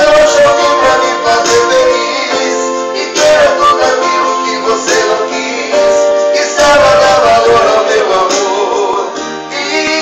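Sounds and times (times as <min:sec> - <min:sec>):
instrumental accompaniment: 0:00.0 - 0:10.0
person singing: 0:00.0 - 0:10.0.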